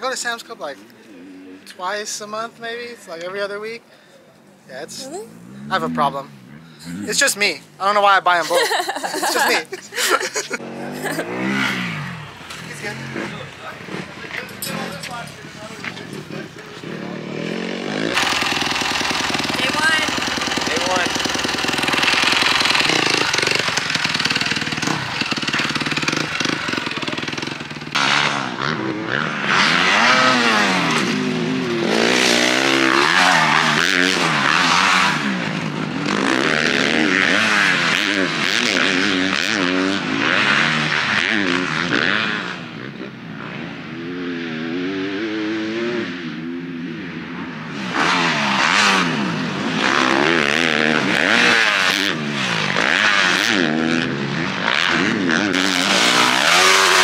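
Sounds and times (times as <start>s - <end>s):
motocross bike engine revving: 4.7s - 57.0s.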